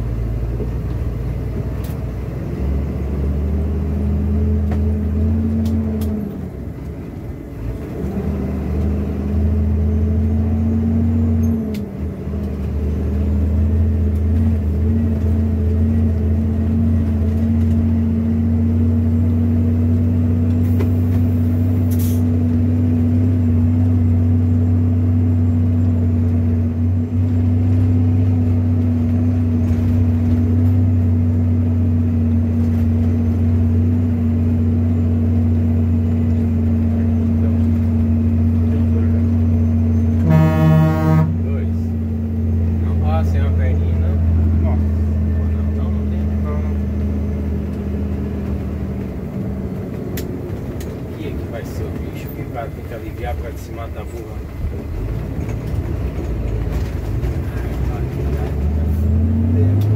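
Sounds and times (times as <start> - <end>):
truck diesel engine running: 0.0 - 59.9
truck horn toot: 40.1 - 41.5.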